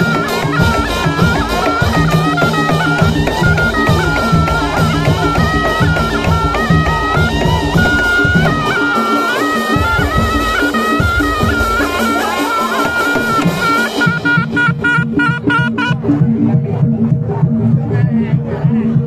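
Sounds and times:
shawm playing ornamented melody: 0:00.0 - 0:17.8
drums and metal percussion: 0:00.0 - 0:19.0.

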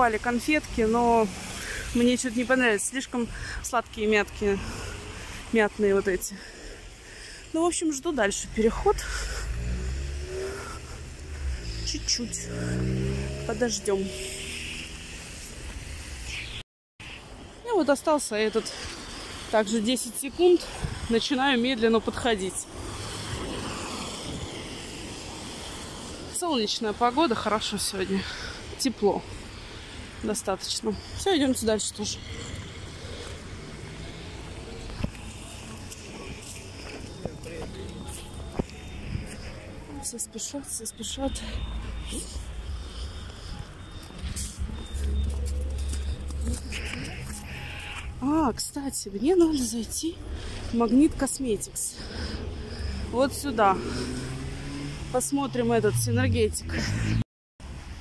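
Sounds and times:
traffic rumble: 0:00.0 - 0:58.0
wind: 0:00.0 - 0:58.0
car engine accelerating: 0:08.4 - 0:15.4, 0:52.1 - 0:57.2.

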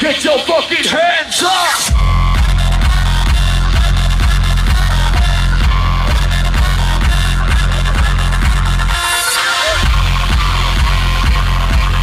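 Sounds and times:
electronic dance music: 0:00.0 - 0:12.0
heavy bass: 0:00.1 - 0:12.0.

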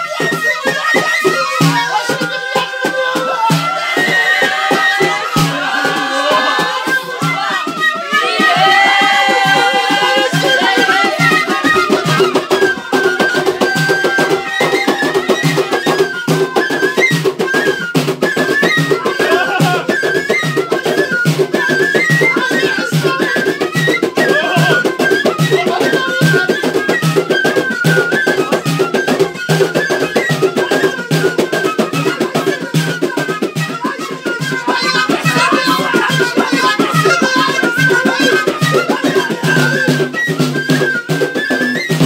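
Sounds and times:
wind pipe melody: 0:00.0 - 0:42.0
frame drum beating: 0:01.5 - 0:20.0, 0:27.8 - 0:42.0.

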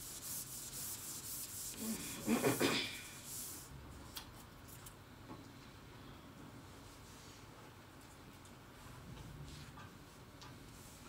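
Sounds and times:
scratchy rustling hiss: 0:00.0 - 0:03.7
person coughing: 0:01.8 - 0:03.1.

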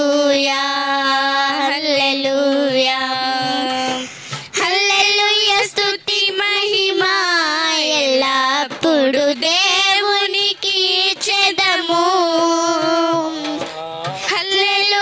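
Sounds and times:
hand drum beats: 0:00.0 - 0:06.8, 0:08.6 - 0:15.0
girls singing worship song: 0:00.0 - 0:15.0.

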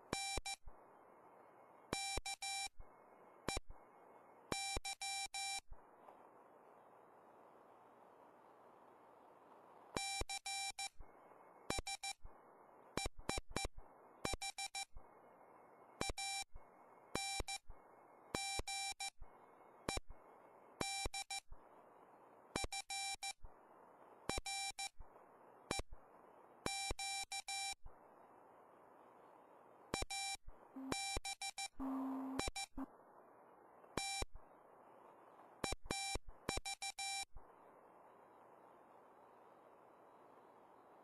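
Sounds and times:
lower steady tone: 0:00.0 - 0:41.0
receiver hiss: 0:00.0 - 0:41.0
morse code tone: 0:30.2 - 0:32.9.

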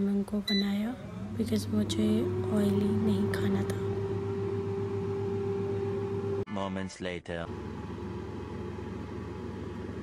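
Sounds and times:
air fryer fan hum: 0:00.0 - 0:06.5, 0:07.5 - 0:10.0
whine-like tone: 0:01.2 - 0:06.4.

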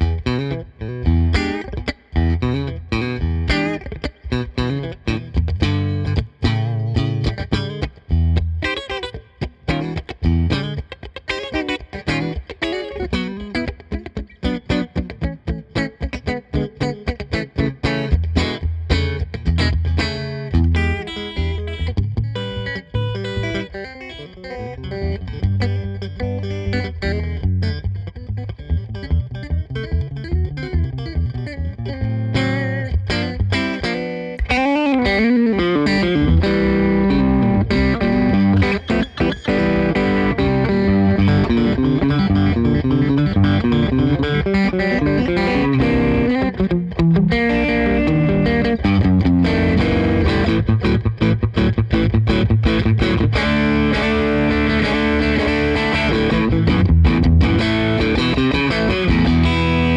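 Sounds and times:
electric guitar lead lines: 0:00.0 - 0:59.9.

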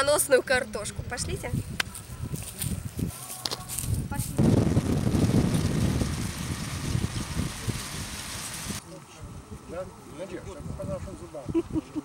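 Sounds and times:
wind buffeting microphone: 0:00.7 - 0:12.0.

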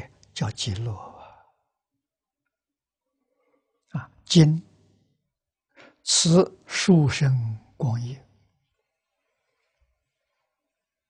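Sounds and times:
man speaking: 0:00.0 - 0:01.4, 0:04.0 - 0:04.7, 0:06.0 - 0:08.2.

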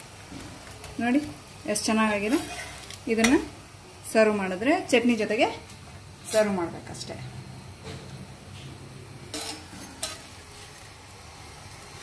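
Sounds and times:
faint sizzle on hot pan: 0:00.0 - 0:12.0
metal spatula scraping pan: 0:02.3 - 0:03.4, 0:09.3 - 0:10.8
woman speaking: 0:04.1 - 0:05.6, 0:06.3 - 0:07.4.

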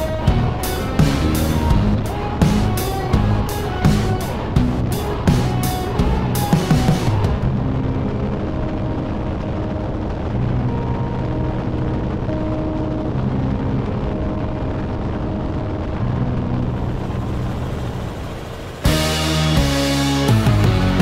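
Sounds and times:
helicopter rotor rumble: 0:00.0 - 0:20.4
held musical notes: 0:00.0 - 0:21.0.

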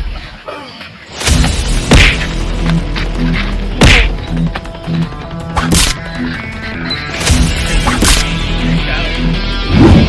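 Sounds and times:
background music: 0:00.0 - 0:10.0
punch and whack hits: 0:01.2 - 0:02.4, 0:03.8 - 0:04.2, 0:05.6 - 0:06.0, 0:07.3 - 0:08.3.

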